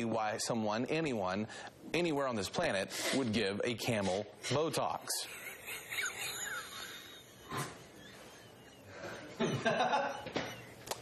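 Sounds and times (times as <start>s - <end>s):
woman stifled laughter: 5.2s - 10.9s.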